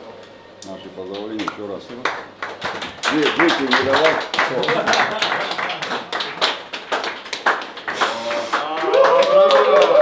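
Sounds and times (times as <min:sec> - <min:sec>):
group clapping in rhythm: 0:01.2 - 0:10.0.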